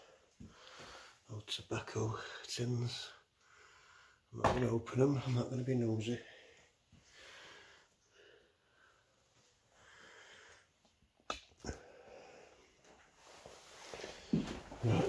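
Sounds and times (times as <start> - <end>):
faint breathing: 0.0 - 1.3, 3.3 - 4.3, 6.2 - 10.8, 11.6 - 15.0.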